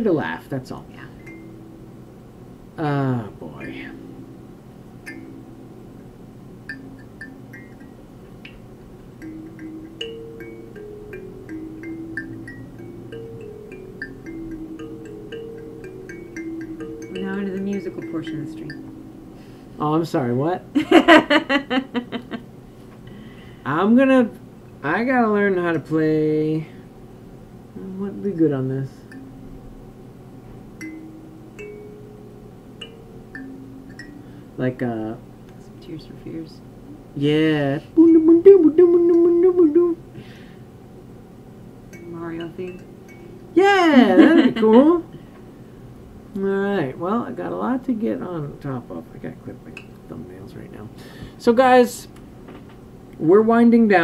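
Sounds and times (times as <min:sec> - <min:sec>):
kalimba notes plucked: 0:01.0 - 0:02.0, 0:03.5 - 0:20.3, 0:28.2 - 0:29.6, 0:30.8 - 0:34.4, 0:41.9 - 0:45.0.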